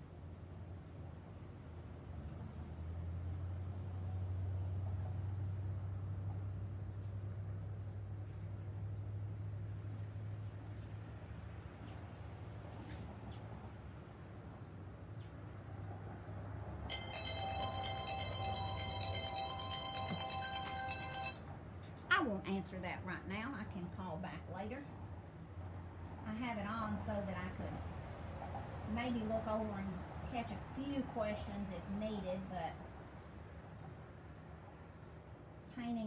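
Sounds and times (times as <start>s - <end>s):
phone ringtone melody: 16.9s - 21.4s.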